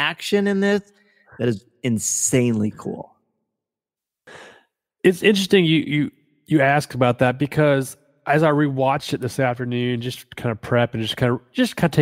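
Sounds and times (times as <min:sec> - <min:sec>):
person breathing in: 0:04.3 - 0:04.8.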